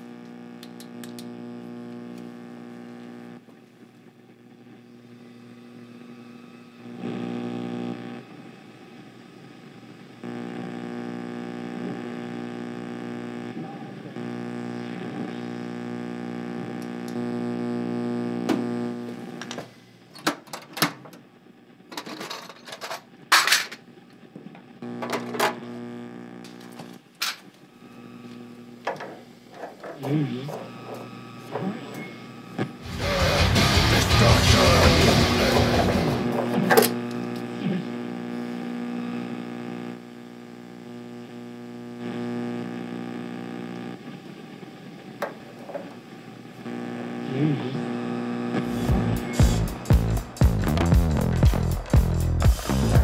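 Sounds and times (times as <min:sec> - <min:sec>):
boiler buzzing drone: 0:00.0 - 0:19.6, 0:24.8 - 0:27.0, 0:27.7 - 0:53.0
rock music with heavy guitar: 0:32.8 - 0:36.6, 0:48.7 - 0:53.0.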